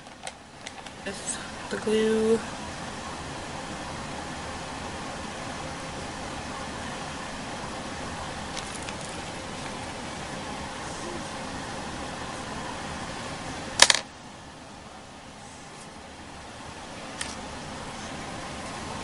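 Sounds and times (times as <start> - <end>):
room noise hiss: 0.0 - 19.0.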